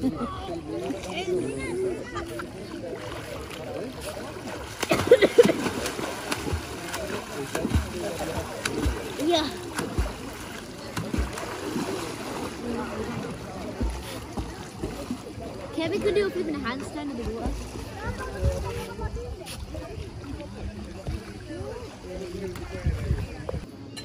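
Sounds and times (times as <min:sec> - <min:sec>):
pool water splashing: 0:00.0 - 0:23.9
voices in pool: 0:00.0 - 0:24.0.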